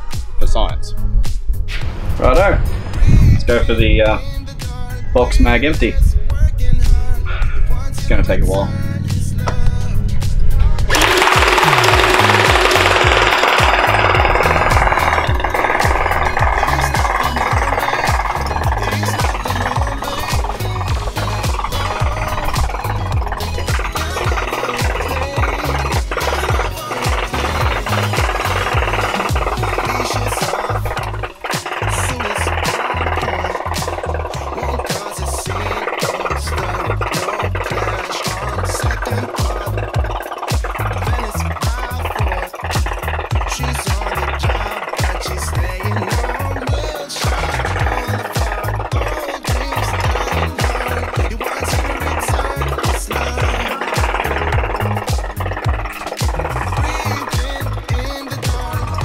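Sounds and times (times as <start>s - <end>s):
music with steady beat: 1.2s - 59.0s
gel blaster rapid rattle: 10.9s - 59.0s.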